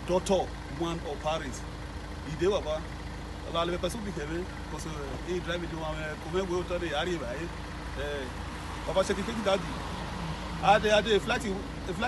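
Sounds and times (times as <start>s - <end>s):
man speaking: 3.5s - 9.9s, 10.6s - 12.0s.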